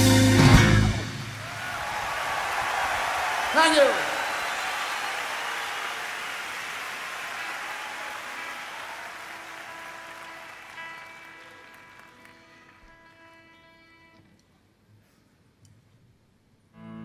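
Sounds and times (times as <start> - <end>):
crowd applauding: 1.0 - 13.6.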